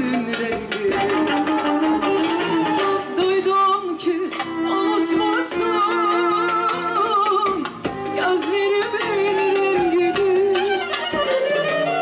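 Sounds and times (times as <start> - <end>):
instrumental backing: 0.0 - 12.0.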